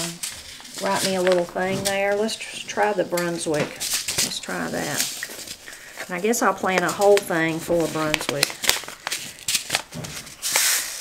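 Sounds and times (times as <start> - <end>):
paper packet crinkling: 0.0 - 11.0
seeds shaken in paper packet: 6.9 - 11.0.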